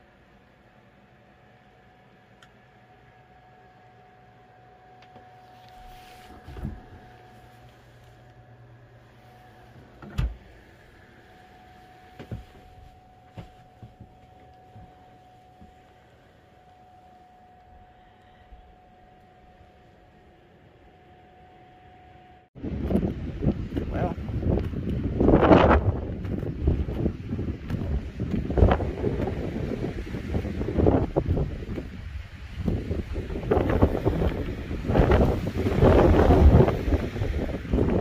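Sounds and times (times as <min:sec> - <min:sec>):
faint steady hum: 0:00.0 - 0:38.0
wind buffeting microphone: 0:22.6 - 0:38.0.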